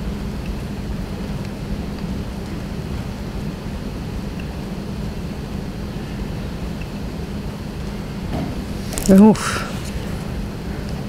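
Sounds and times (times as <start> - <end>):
continuous low hum: 0.0 - 11.0
even hiss: 8.4 - 10.4.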